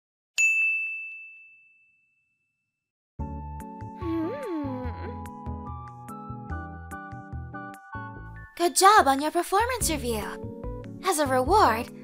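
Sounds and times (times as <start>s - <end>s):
bell-like ding: 0.4s - 2.7s.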